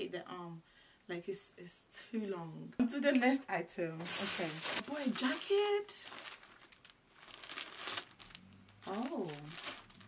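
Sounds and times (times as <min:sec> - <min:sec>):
plastic bag crinkling: 0:04.0 - 0:10.0.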